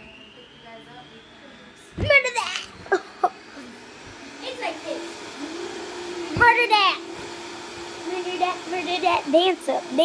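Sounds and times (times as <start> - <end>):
girls making wordless sounds: 2.0 - 7.3.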